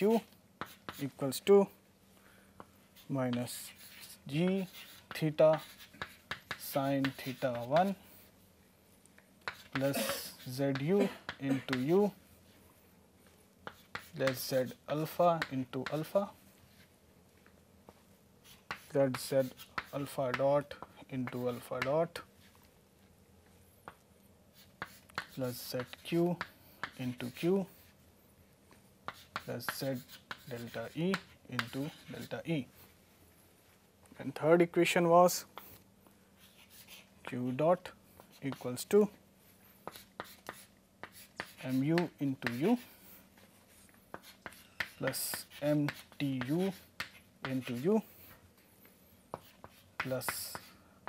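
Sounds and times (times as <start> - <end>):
chalk scratching on chalkboard: 0.0 - 1.4, 2.9 - 8.4, 9.4 - 12.6, 13.6 - 16.9, 18.4 - 22.3, 23.9 - 28.0, 29.0 - 33.0, 36.4 - 37.2, 37.8 - 50.8
man talking: 9.7 - 12.2, 41.6 - 42.9.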